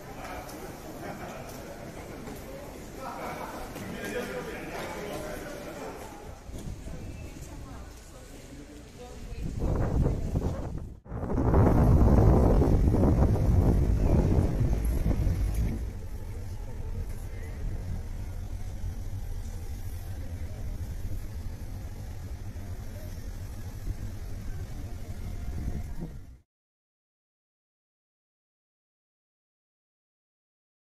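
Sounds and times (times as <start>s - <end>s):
outdoor background noise: 0.0s - 26.4s
loud low rumble: 9.4s - 26.4s.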